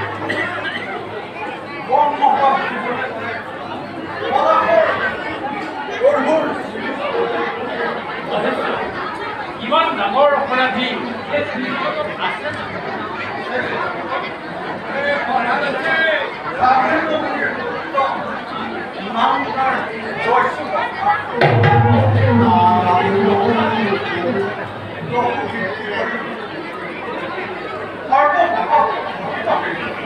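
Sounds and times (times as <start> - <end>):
several voices talking: 0.0 - 30.0.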